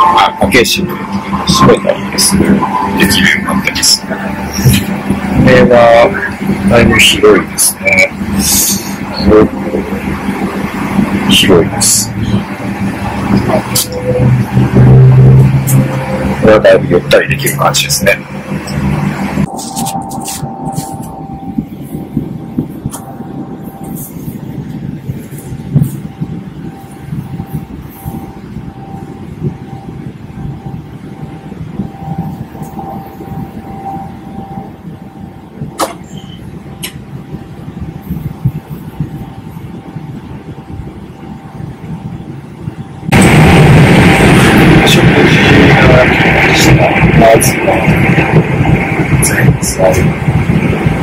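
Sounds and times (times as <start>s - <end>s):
loud music: 0.0s - 29.0s
airplane cabin rumble: 0.0s - 51.0s.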